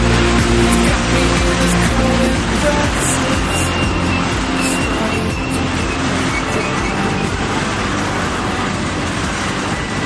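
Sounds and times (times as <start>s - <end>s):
high wheel squeal: 3.2s - 8.6s, 9.2s - 10.0s.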